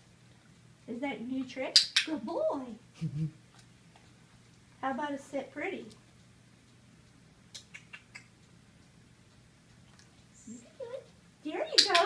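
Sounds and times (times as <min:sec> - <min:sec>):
light ticks: 0:03.6 - 0:04.8, 0:05.8 - 0:12.0.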